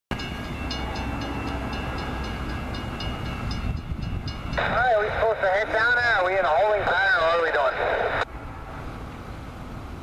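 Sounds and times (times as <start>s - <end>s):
crossing bell ringing: 0.1s - 6.4s
train rumble: 0.1s - 10.0s.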